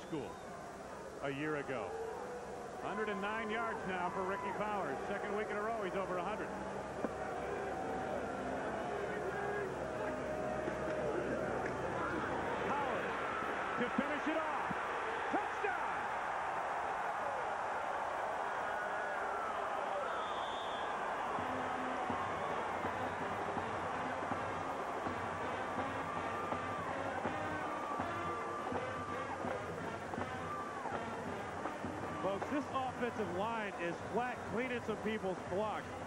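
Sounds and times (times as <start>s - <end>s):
stadium crowd cheering: 1.4s - 36.0s.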